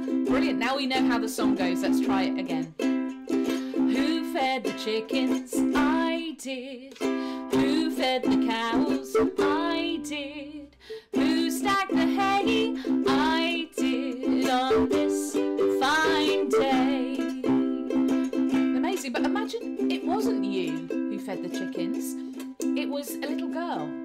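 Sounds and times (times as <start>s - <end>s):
woman singing: 0.0s - 2.8s, 3.5s - 24.0s
strummed ukulele: 0.0s - 24.0s
woman speaking: 0.3s - 2.7s, 18.8s - 22.2s, 22.8s - 24.0s.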